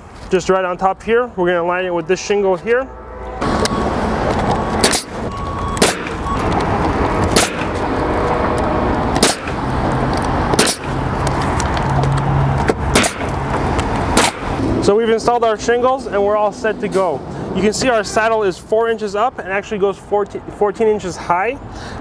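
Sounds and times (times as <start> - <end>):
steady background noise: 0.0 - 22.0
nail gun firing: 4.8 - 5.2, 5.8 - 6.2, 7.3 - 7.7, 9.2 - 9.6, 10.5 - 11.0, 12.9 - 13.3, 14.2 - 14.6.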